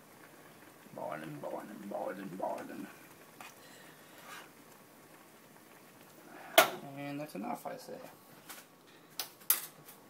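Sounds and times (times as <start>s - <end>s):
gas burner hissing: 0.0s - 8.5s.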